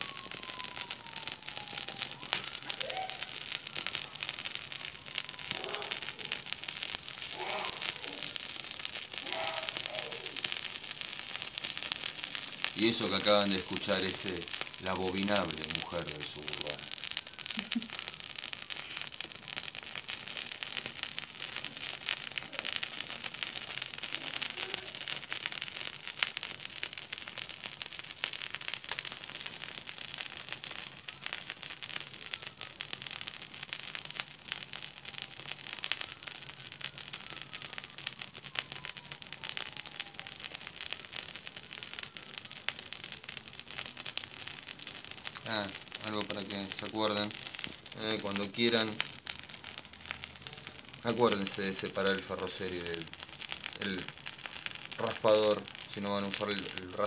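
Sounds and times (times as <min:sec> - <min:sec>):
fire hissing and crackling: 0:00.0 - 0:57.0.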